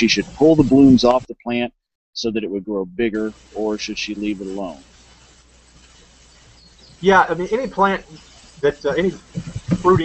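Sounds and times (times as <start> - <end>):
faint background hiss: 0.0 - 1.6, 2.2 - 10.0.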